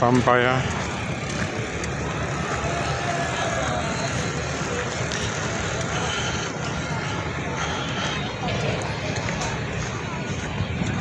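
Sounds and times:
road and wind noise: 0:00.0 - 0:11.0.

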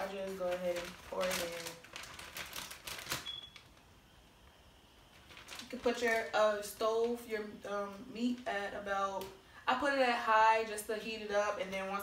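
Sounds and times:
plastic bag rustling: 0:00.0 - 0:03.9, 0:05.0 - 0:07.5.

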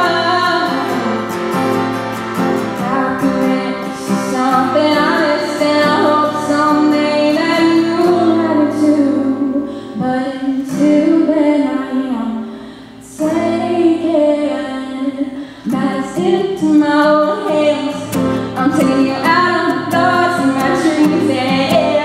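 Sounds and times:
strummed acoustic guitar: 0:00.0 - 0:22.0
woman singing country song: 0:00.0 - 0:22.0.

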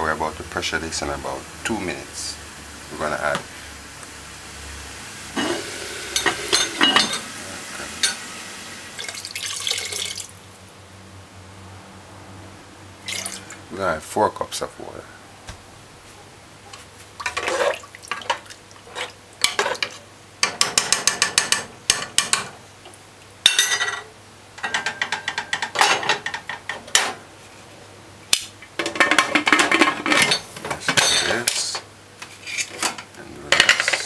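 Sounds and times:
metal spoon scraping pot: 0:05.4 - 0:07.2
pot lid clanking: 0:05.4 - 0:07.3.

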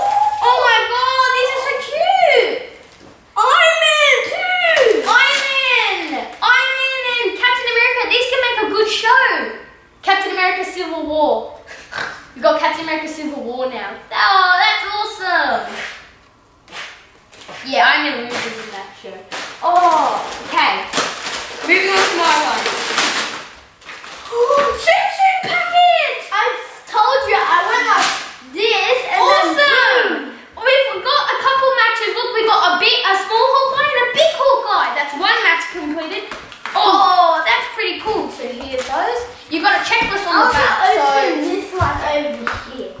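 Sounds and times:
children talking and exclaiming: 0:00.0 - 0:16.0, 0:17.6 - 0:23.1, 0:24.2 - 0:43.0
wrapping paper tearing: 0:04.8 - 0:06.4, 0:18.3 - 0:24.7, 0:27.6 - 0:28.5.

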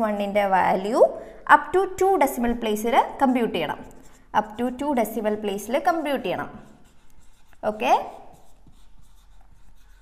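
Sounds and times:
marker scratching on whiteboard: 0:02.8 - 0:10.0.

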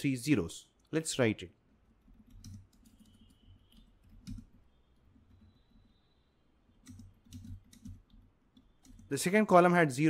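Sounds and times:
faint keyboard typing: 0:01.7 - 0:09.4.

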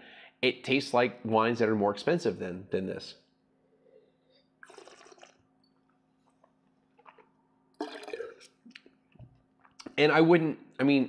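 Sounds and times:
sipping wine from a glass: 0:03.9 - 0:08.9.

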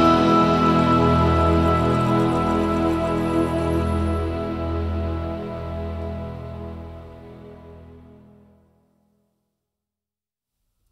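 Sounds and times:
orchestra holding sustained chord: 0:00.0 - 0:08.6.

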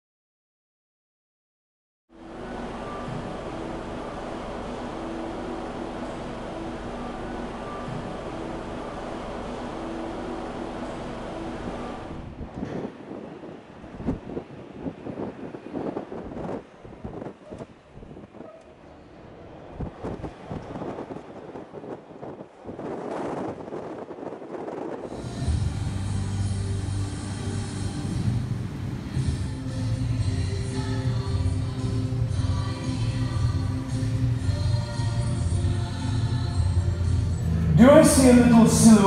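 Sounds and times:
music: 0:02.2 - 0:12.4, 0:25.1 - 0:39.0
wind buffeting microphone: 0:12.1 - 0:26.3.

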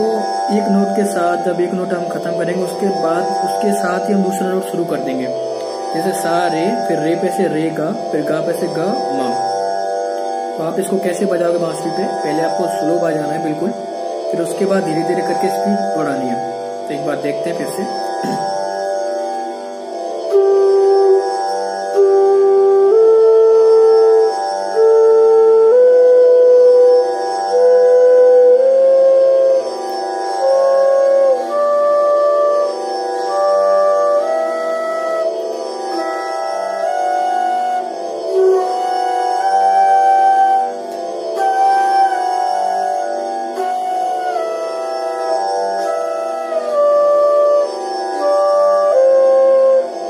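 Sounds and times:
bamboo flute playing held notes: 0:00.0 - 0:19.3, 0:20.1 - 0:50.0
tanpura drone: 0:00.0 - 0:50.0.

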